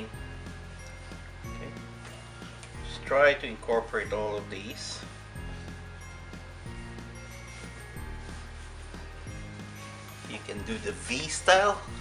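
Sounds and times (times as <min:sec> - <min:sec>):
instrumental music with bass line: 0:00.0 - 0:12.0.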